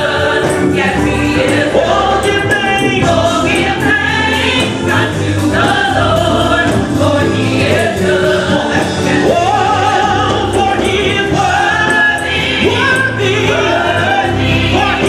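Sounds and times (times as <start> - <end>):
choir singing: 0.0 - 15.0
gospel music backing with beat: 0.0 - 15.0.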